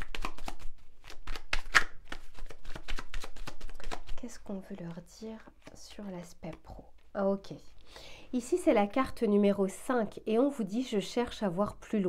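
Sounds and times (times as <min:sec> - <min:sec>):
cards being shuffled: 0:00.0 - 0:07.1.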